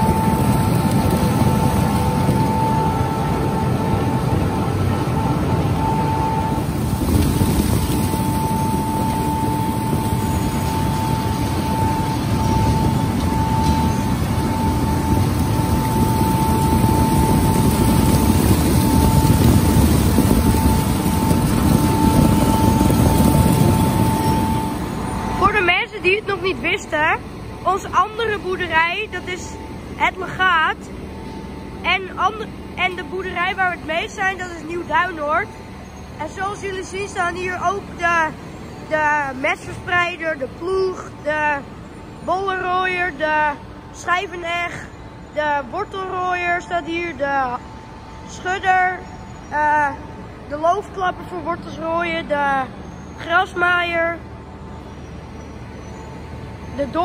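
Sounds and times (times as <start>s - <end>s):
conveyor machinery rumbling: 0.0s - 57.0s.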